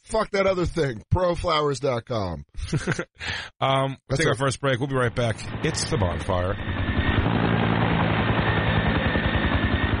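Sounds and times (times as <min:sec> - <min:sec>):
helicopter rotor chop: 0:05.1 - 0:10.0.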